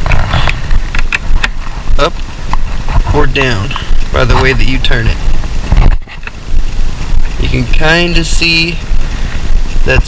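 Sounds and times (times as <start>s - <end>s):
heavy low rumble: 0.0s - 10.0s.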